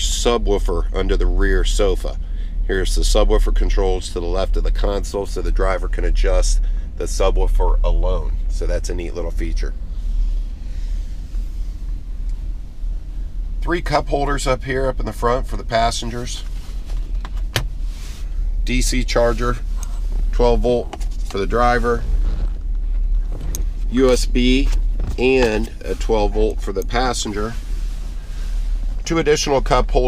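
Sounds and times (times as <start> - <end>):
steady low rumble: 0.0 - 30.0.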